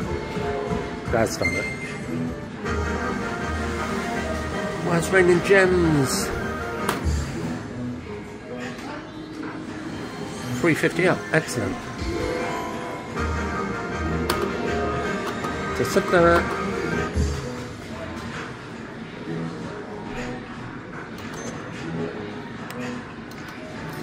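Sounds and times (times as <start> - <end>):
slot machine celebration music: 10.3 - 17.6.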